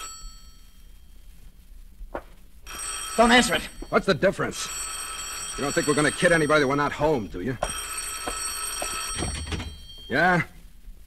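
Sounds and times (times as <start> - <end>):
old telephone bell ringing: 0.0 - 1.1, 2.7 - 10.5.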